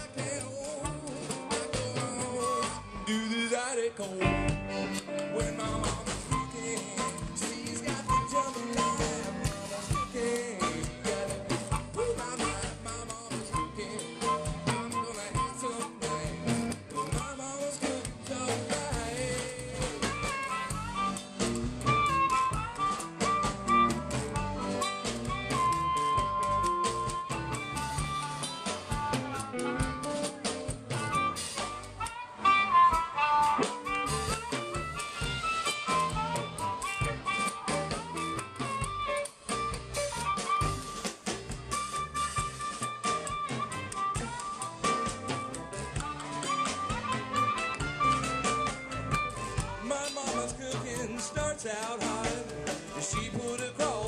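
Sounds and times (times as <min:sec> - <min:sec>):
bass: 0:00.0 - 0:54.0
blues harmonica lead: 0:00.0 - 0:54.0
drum kit: 0:00.0 - 0:54.0
electric guitar: 0:00.0 - 0:54.0.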